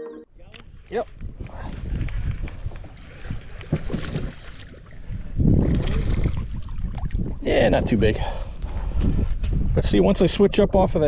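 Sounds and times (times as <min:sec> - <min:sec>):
wind buffeting microphone: 0:00.4 - 0:11.0.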